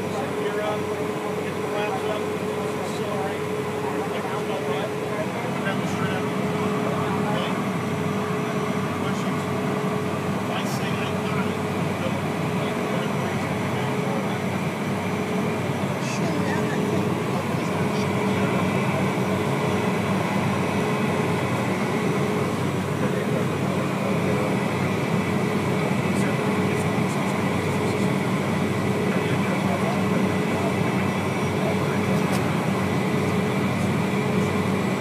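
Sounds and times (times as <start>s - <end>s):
jet engines running in cabin: 0.0s - 35.0s.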